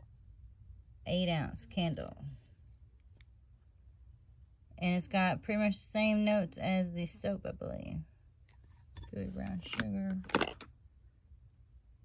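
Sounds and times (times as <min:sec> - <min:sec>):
steady low hum: 0:00.0 - 0:12.0
person speaking: 0:09.0 - 0:10.7.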